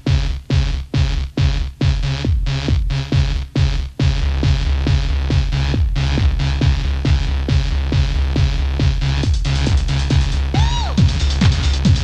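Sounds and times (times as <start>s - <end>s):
deep bass line: 0.0s - 12.0s
hi-hat strokes: 0.0s - 12.0s
techno kick drum: 0.0s - 12.0s.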